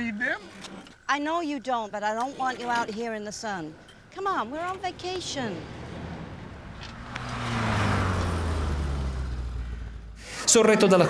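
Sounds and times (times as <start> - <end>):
car engine approaching: 3.3 - 11.0.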